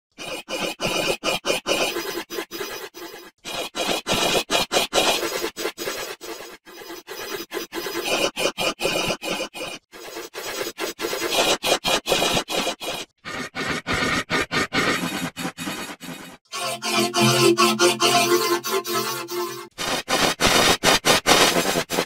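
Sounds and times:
distorted stuttering squealing: 0:16.6 - 0:19.8.

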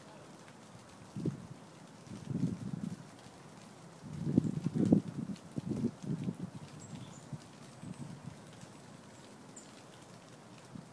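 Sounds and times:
buffeting rumble on microphone: 0:02.1 - 0:03.1, 0:04.0 - 0:08.4.

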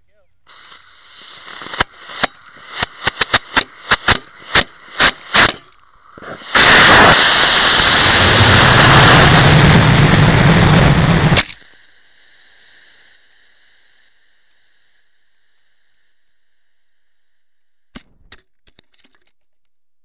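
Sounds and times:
rocket igniter sputtering: 0:00.4 - 0:11.8
sharp pops and cracks: 0:00.5 - 0:07.2, 0:11.3 - 0:11.7
rocket motor roaring: 0:00.5 - 0:11.6.

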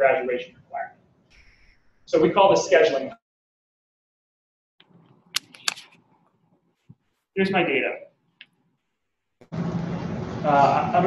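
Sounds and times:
sharp clicks: 0:05.0 - 0:06.0.

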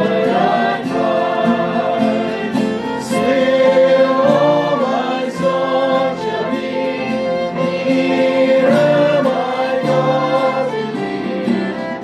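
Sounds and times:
man singing: 0:00.0 - 0:06.6
acoustic guitar strumming: 0:00.0 - 0:12.0.

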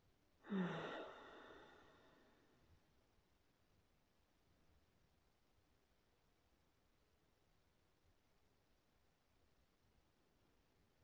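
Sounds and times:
woman sighing: 0:00.5 - 0:01.9.

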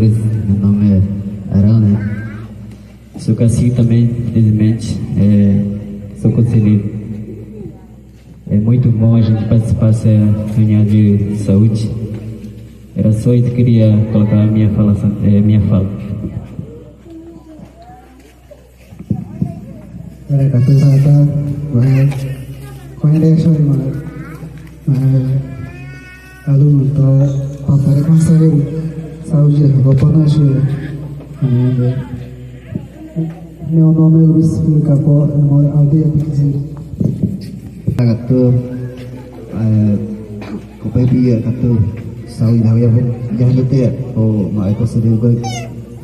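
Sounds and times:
man speaking through loudspeaker: 0:00.0 - 0:17.0, 0:19.0 - 0:46.0.

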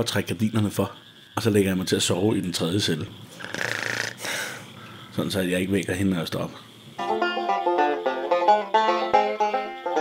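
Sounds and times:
person mock snoring: 0:03.4 - 0:04.4
breathy exhale: 0:03.4 - 0:05.1.

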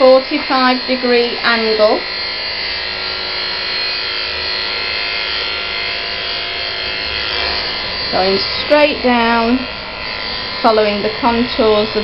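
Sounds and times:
electric clippers humming: 0:00.0 - 0:12.0.

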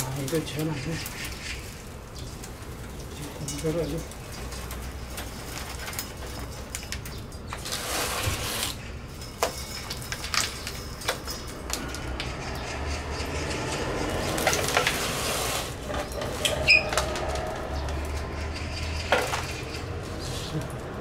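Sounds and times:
twigs rustling and crackling: 0:00.0 - 0:21.0.

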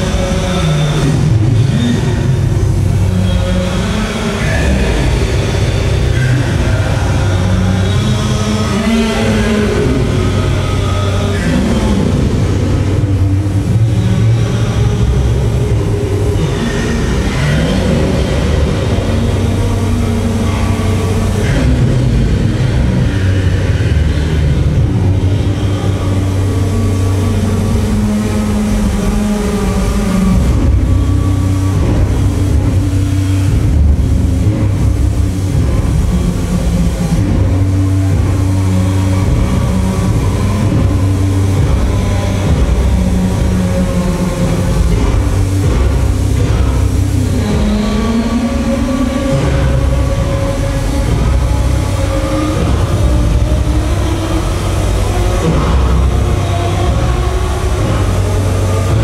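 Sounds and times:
noise drone music: 0:00.0 - 0:59.0.

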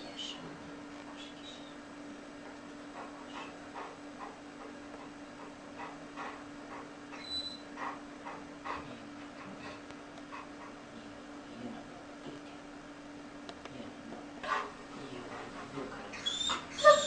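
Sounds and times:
dog whimpering faintly: 0:07.1 - 0:07.7, 0:16.1 - 0:17.0.

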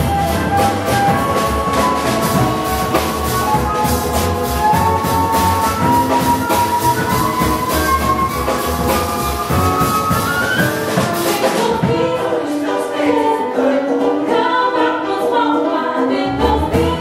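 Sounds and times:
upright bass: 0:00.0 - 0:11.0
drum kit: 0:00.0 - 0:15.1, 0:16.3 - 0:17.0
jazz choir singing: 0:00.0 - 0:17.0
piano: 0:00.0 - 0:17.0.

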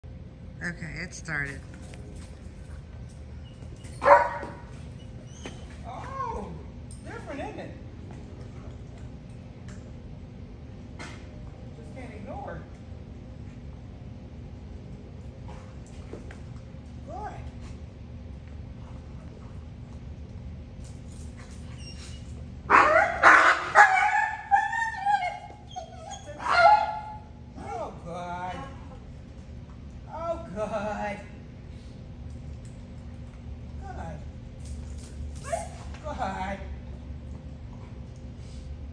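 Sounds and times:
dog barking: 0:04.0 - 0:04.6, 0:22.7 - 0:24.5, 0:26.4 - 0:27.2
dog whining: 0:21.6 - 0:27.8.

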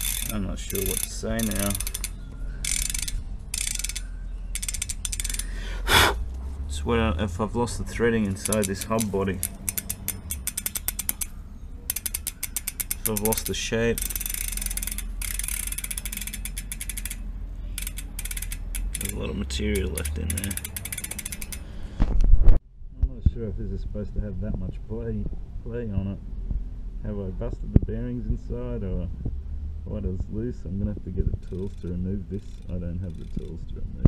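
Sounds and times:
bicycle hub ratcheting clicks: 0:00.0 - 0:05.6, 0:08.0 - 0:21.8, 0:31.4 - 0:33.6.

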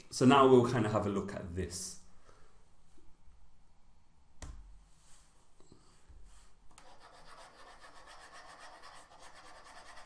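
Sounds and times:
stylus scrubbing on tablet: 0:06.8 - 0:10.0.

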